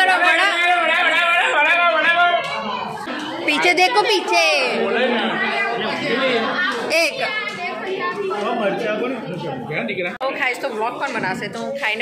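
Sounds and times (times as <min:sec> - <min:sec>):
chatter of small crowd: 0:00.0 - 0:12.0.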